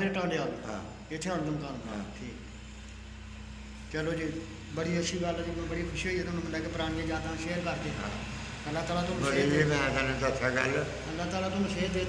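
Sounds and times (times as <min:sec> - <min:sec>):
men speaking: 0:00.0 - 0:02.6, 0:03.8 - 0:12.0
low background hum: 0:00.0 - 0:12.0.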